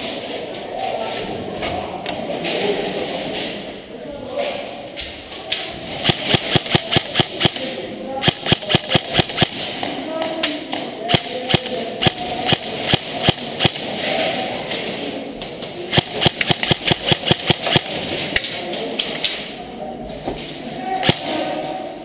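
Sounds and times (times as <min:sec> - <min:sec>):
game gun shots: 0:06.0 - 0:09.7, 0:11.1 - 0:14.0, 0:15.9 - 0:18.0.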